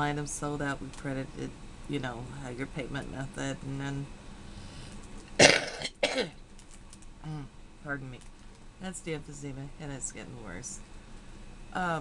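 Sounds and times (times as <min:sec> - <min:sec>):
woman coughing: 0:05.4 - 0:06.4.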